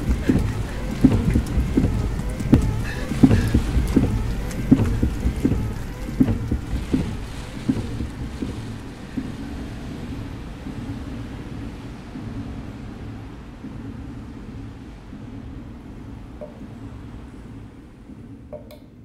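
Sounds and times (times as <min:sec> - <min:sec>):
low steady rumble: 0:00.0 - 0:19.0
rain with big drops tapping: 0:00.0 - 0:19.0.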